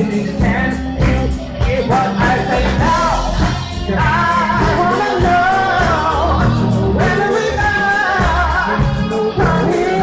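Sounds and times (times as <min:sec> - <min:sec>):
bass guitar: 0:00.0 - 0:10.0
distorted electric guitars: 0:00.0 - 0:10.0
drums: 0:00.0 - 0:10.0
keyboard: 0:00.0 - 0:10.0
person singing: 0:00.0 - 0:10.0.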